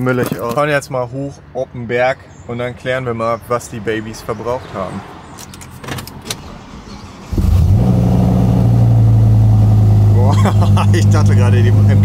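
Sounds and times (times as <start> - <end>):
car engine starting and idling: 6.1 - 12.0.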